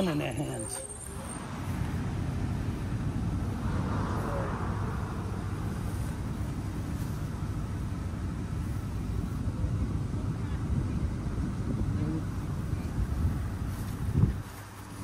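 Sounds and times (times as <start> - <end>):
car passing: 0.0 - 15.0
low rumble of road traffic: 0.0 - 15.0.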